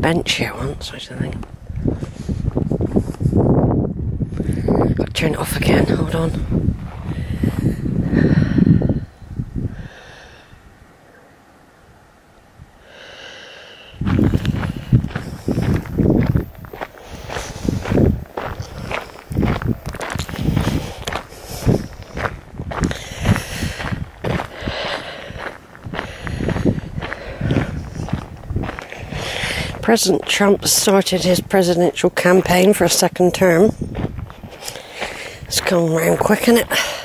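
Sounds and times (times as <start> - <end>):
footsteps on gravel: 1.1 - 3.2, 14.0 - 37.0.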